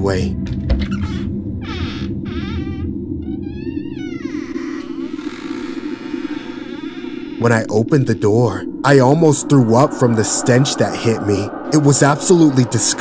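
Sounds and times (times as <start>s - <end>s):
dark ambient music drone: 0.0s - 13.0s
hatch creaking open: 0.8s - 8.6s.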